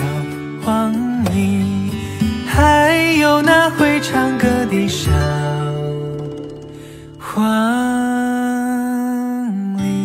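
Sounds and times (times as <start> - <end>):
plucked acoustic guitar: 0.0 - 10.0.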